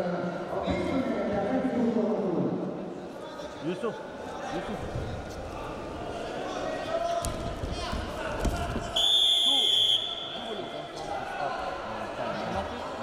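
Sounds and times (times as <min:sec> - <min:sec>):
voices in a hall: 0:00.0 - 0:13.0
referee whistle: 0:09.0 - 0:10.6.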